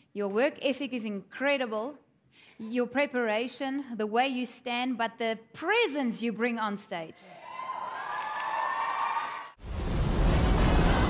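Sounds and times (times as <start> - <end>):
audience applauding and cheering: 7.3 - 11.0
theme music with heavy bass: 9.7 - 11.0.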